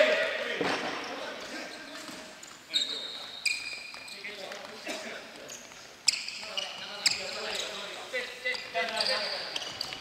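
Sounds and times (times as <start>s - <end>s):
players' voices echoing: 0.0s - 10.0s
sneakers squeaking on floor: 0.8s - 10.0s.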